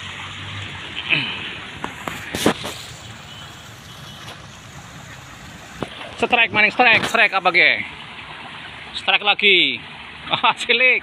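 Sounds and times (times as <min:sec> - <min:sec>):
fish splashing in water: 0:00.0 - 0:09.0.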